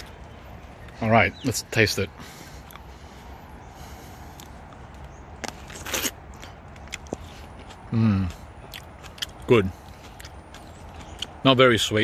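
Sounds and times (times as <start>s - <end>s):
biting into juicy fruit: 4.3s - 11.5s.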